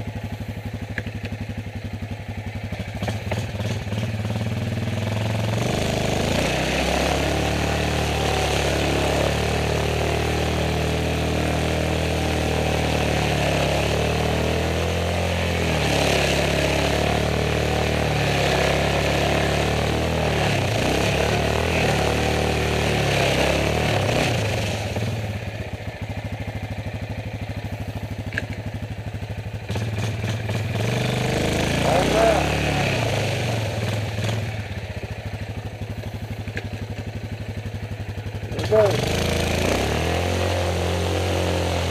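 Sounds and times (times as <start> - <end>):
atv engine revving: 0.0 - 41.9
vehicle pushing through mud and water: 2.7 - 27.5, 29.7 - 37.0, 37.7 - 41.9.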